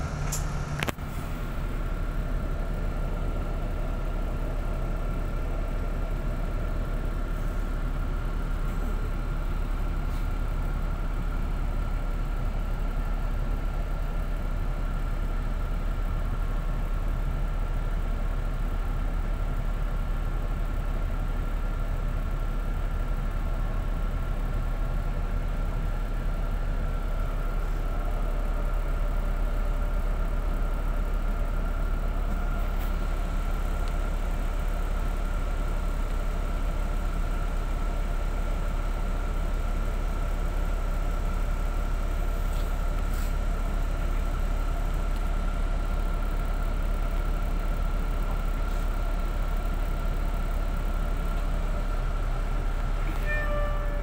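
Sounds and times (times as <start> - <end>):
bus engine rumble: 0.0 - 54.0
faint high whine: 53.1 - 54.0.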